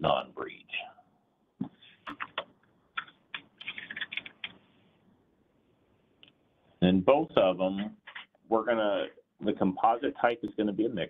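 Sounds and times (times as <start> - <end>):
typing on computer keyboard: 2.1 - 4.6.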